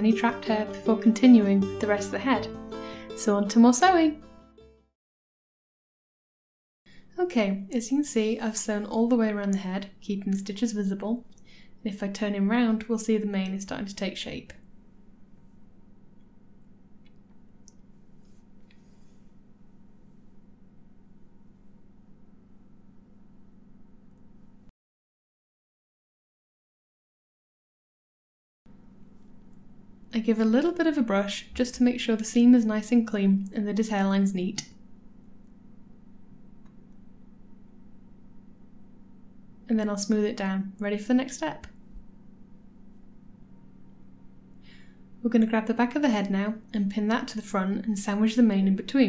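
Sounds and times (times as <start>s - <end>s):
low hum: 28.7s - 49.0s.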